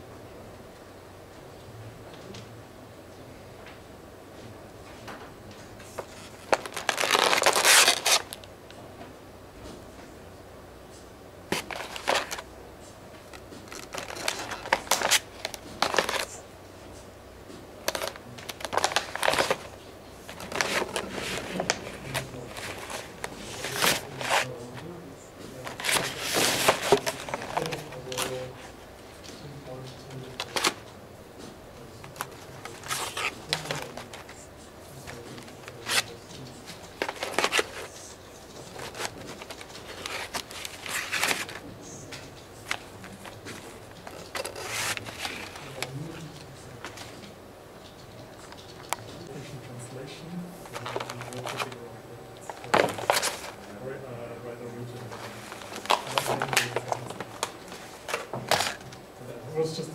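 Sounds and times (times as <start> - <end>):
plastic punnet crackling: 6.0 - 8.5, 11.5 - 12.4, 13.2 - 16.4, 17.8 - 24.9, 25.6 - 30.9, 32.0 - 34.4, 35.0 - 47.3, 50.6 - 51.8, 52.4 - 53.8, 54.9 - 59.0.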